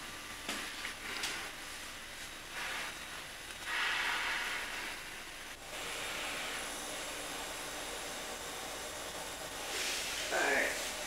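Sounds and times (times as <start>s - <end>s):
room tone hiss: 0.0s - 11.0s.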